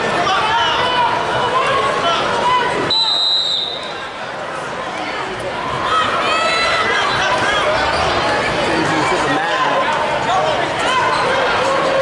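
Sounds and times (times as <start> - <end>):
spectators shouting and chattering: 0.0 - 12.0
referee's whistle blast: 2.9 - 3.9.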